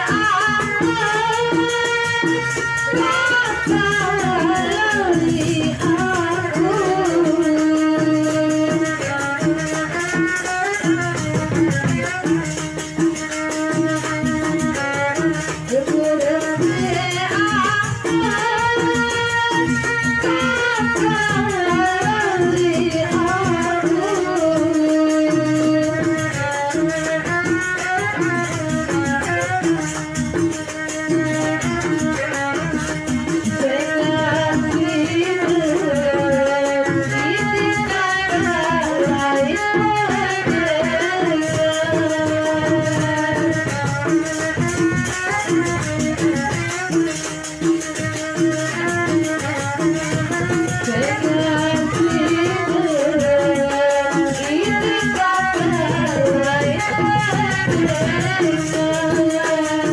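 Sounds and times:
woman singing through microphone: 0.0s - 46.9s, 48.4s - 59.9s
hand drums: 0.0s - 59.9s
rattling percussion: 0.0s - 59.9s.

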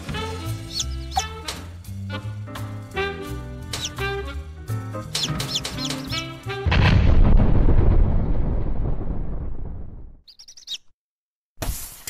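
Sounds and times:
slow jazz music: 0.0s - 6.7s
high bird chirps: 0.6s - 1.4s, 3.8s - 4.0s, 5.2s - 6.3s, 10.2s - 11.0s
cartoon explosion boom: 6.6s - 10.2s.

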